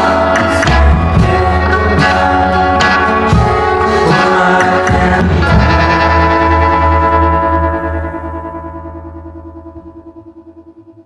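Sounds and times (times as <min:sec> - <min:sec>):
rock music held chord: 0:00.0 - 0:11.0.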